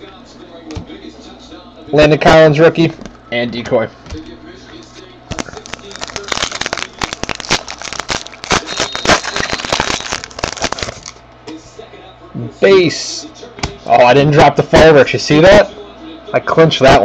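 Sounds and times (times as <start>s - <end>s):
wrapper being torn and crinkled: 5.3s - 11.2s.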